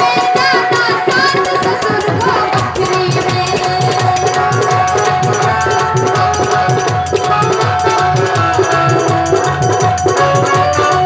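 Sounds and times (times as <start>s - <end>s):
dholak beat: 0.0s - 11.0s
rattling percussion: 0.0s - 11.0s
electronic keyboard notes: 3.0s - 11.0s.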